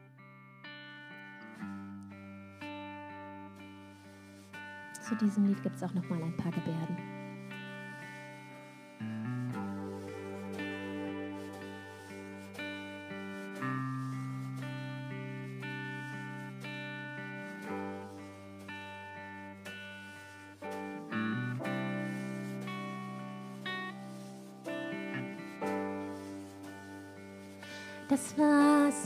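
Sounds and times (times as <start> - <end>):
guitar and keyboard chords: 0.0 - 29.0.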